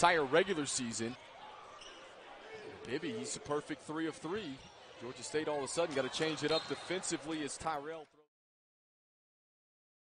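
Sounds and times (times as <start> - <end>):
low crowd noise: 0.0 - 8.2
sports commentary: 0.0 - 8.3.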